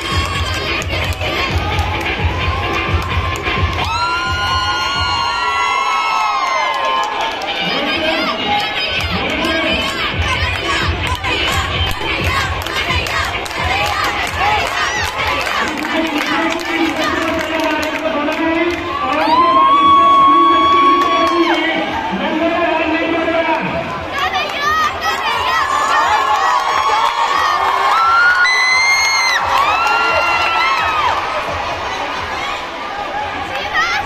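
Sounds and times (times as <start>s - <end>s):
children shouting and cheering: 0.0s - 17.8s, 19.0s - 22.3s, 24.0s - 34.0s.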